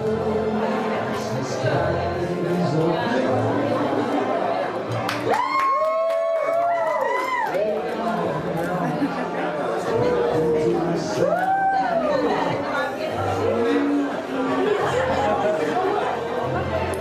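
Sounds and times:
party guests chatting: 0.0s - 17.0s.

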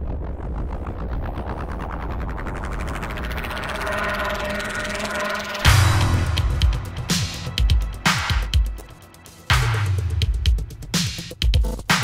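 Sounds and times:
rapid electronic pulses: 0.0s - 9.5s
low rumbling drone: 0.0s - 10.2s.

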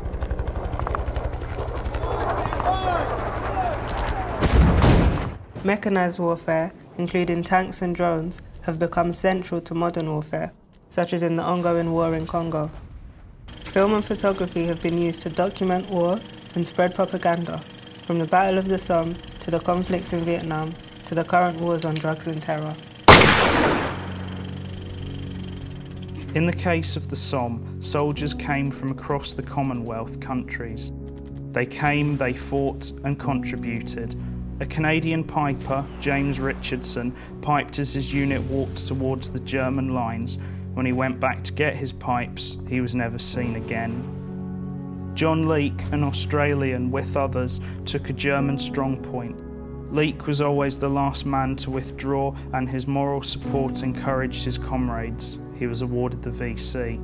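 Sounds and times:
propeller aircraft engine drone: 0.0s - 3.9s, 13.5s - 26.8s, 33.6s - 37.4s
gunshot tail: 0.0s - 5.6s, 23.1s - 24.4s.

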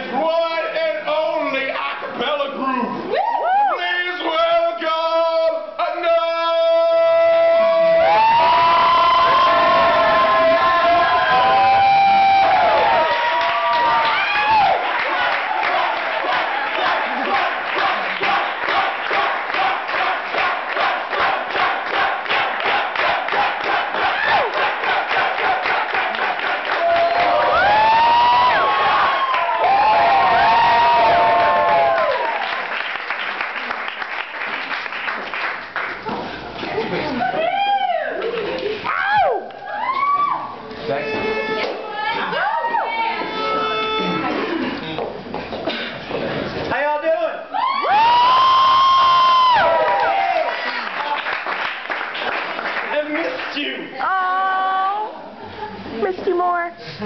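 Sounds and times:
young people chanting and shouting: 6.1s - 30.9s.

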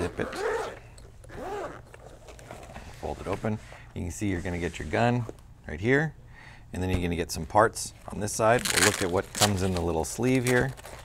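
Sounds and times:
zipper rasping: 0.0s - 2.8s.

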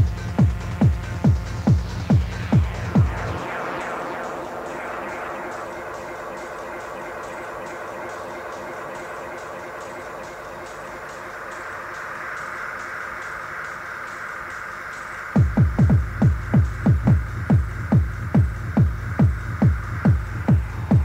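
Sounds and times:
sustained synthesizer wash: 1.5s - 21.0s.

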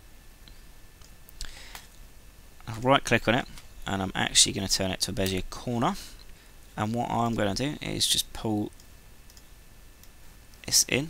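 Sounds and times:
faint background hiss: 0.0s - 11.0s
computer mouse click: 8.8s - 10.2s.

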